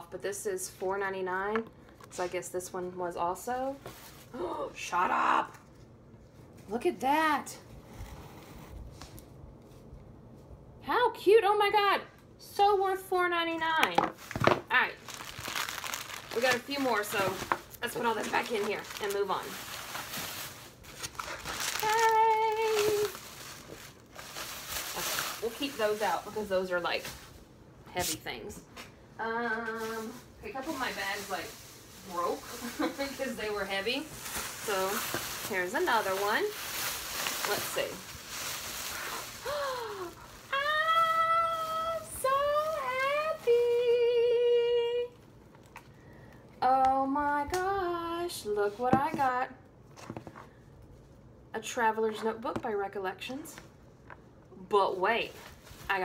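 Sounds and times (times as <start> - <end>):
plastic bag rustling: 14.1 - 27.5, 29.6 - 44.6, 55.0 - 56.0.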